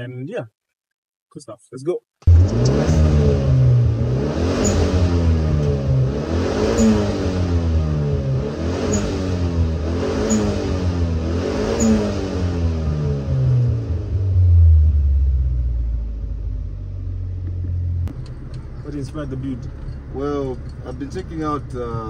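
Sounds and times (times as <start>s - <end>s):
car engine revving: 2.2s - 22.0s.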